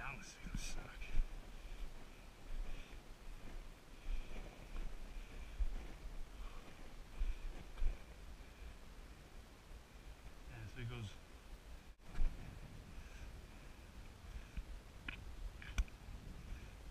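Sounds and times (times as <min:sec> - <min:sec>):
wind and movement rumbling on microphone: 0:00.0 - 0:16.9.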